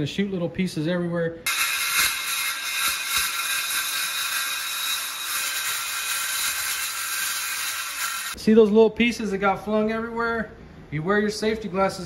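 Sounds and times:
circular saw cutting plank: 0:01.5 - 0:08.4.

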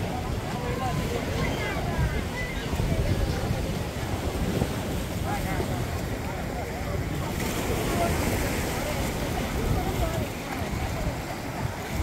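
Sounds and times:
indistinct voices of many people: 0:00.0 - 0:12.0
wind buffeting microphone: 0:00.0 - 0:12.0.

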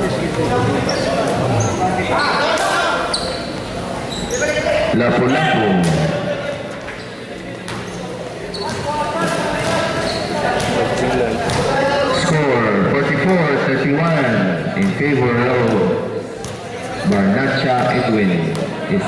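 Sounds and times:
basketball bouncing on hard court: 0:15.6 - 0:17.3.

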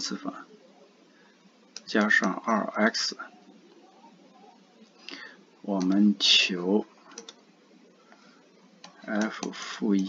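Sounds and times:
stylus tapping tablet screen: 0:07.0 - 0:07.5, 0:08.1 - 0:10.0.

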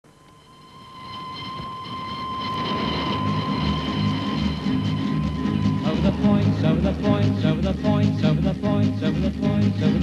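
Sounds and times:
steady high tone: 0:00.1 - 0:10.0
steam train approaching: 0:00.9 - 0:10.0
low rhythmic chugging: 0:01.8 - 0:10.0.

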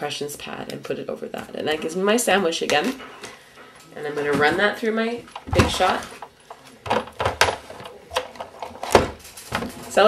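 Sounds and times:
plastic clicks and knocks of machine: 0:05.4 - 0:09.7.

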